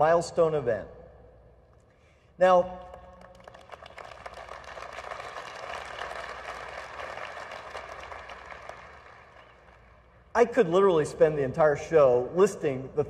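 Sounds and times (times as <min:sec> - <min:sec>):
audience applauding: 0:03.2 - 0:10.2.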